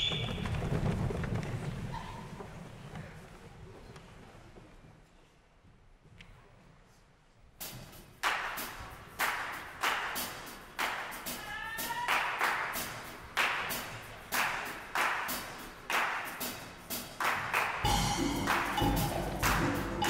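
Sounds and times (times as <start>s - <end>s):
sharp percussive strikes: 7.7s - 20.0s.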